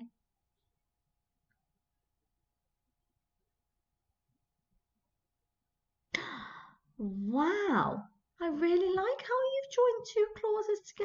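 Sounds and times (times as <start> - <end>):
woman's breathy sigh: 6.2 - 6.8.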